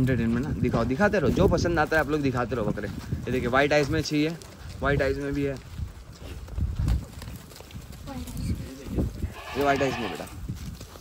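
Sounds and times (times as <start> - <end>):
goats bleating: 9.2 - 10.4.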